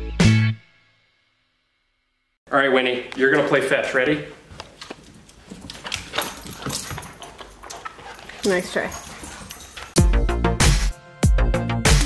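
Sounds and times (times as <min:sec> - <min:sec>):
dog claws clicking on hardwood floor: 0:04.5 - 0:09.9.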